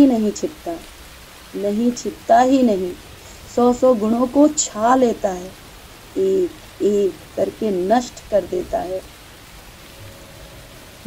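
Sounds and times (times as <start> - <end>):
faint rain falling: 0.0 - 11.0.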